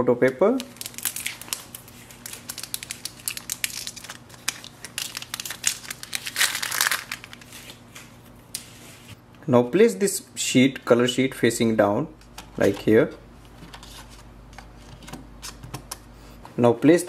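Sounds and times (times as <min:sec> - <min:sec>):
foil pouch crinkling: 0:00.6 - 0:07.9.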